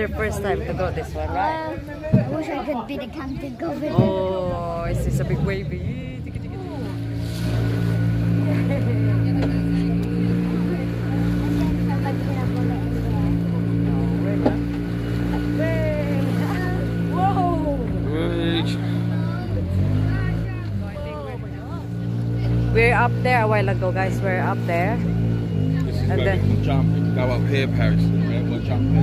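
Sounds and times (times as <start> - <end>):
boat engine running: 0.0 - 29.0.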